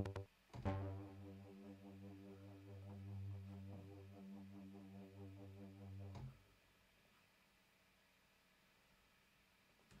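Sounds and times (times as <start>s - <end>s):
synth bass held low note: 0.0s - 6.4s.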